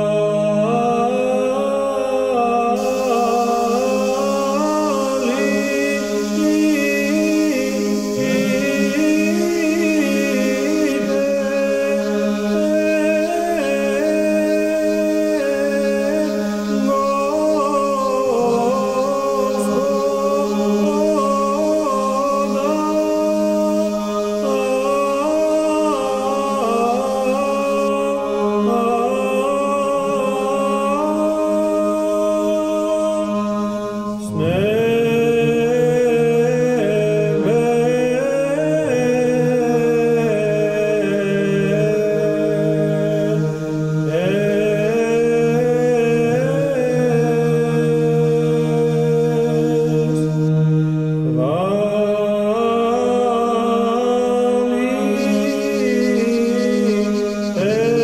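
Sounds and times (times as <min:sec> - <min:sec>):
person chanting long notes: 0:00.0 - 0:58.0
voices humming a slow melody: 0:00.0 - 0:58.0.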